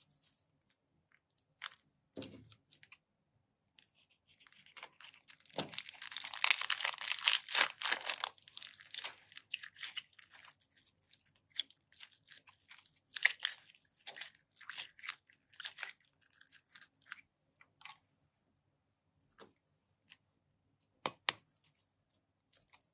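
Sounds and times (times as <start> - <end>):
plastic bag crinkling: 4.4 - 11.2.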